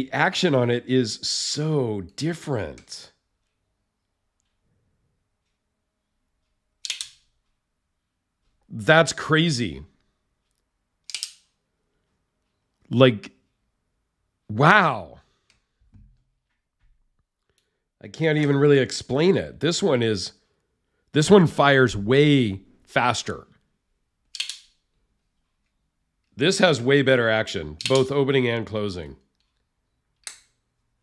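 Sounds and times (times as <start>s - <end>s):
folding knife clicking open: 24.3s - 24.7s.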